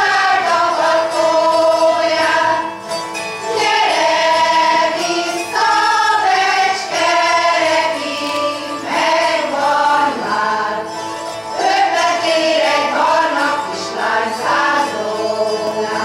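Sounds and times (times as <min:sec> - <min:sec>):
choir singing folk song: 0:00.0 - 0:16.0
zither: 0:00.0 - 0:16.0.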